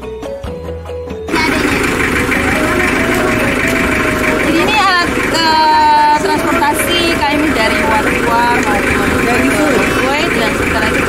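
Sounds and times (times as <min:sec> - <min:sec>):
pickup truck engine idling: 0:01.3 - 0:11.0.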